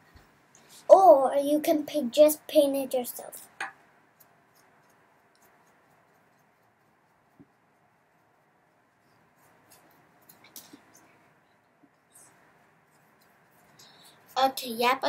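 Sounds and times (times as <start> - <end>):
paintbrush brushing: 4.1 - 15.0.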